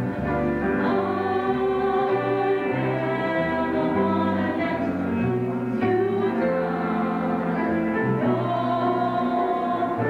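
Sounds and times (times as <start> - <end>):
person singing gospel song: 0.6 - 10.0.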